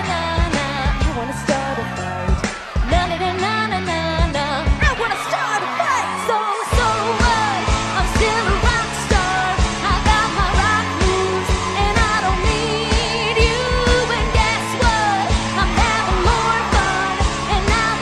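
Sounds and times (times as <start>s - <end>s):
woman singing: 0.0s - 2.0s, 2.8s - 18.0s
rock band playing: 0.0s - 5.8s, 6.6s - 18.0s
bass: 0.0s - 18.0s
drum beat: 2.2s - 3.2s, 6.7s - 18.0s.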